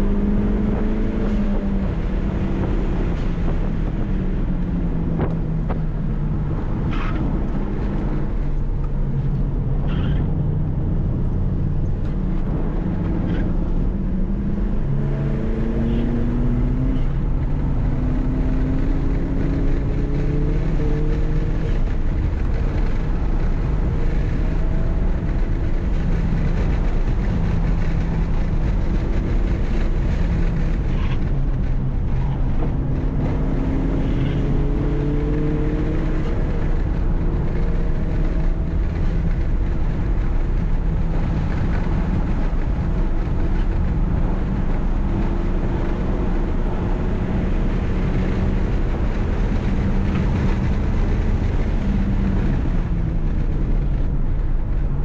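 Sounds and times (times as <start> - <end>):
car engine pulling hard: 0.0 - 55.0
road and wind noise: 0.0 - 55.0.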